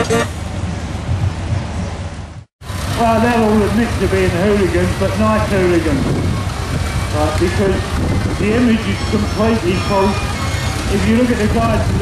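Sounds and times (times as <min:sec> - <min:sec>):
low rumbling background noise: 0:00.0 - 0:12.0
fairground organ music: 0:03.4 - 0:12.0.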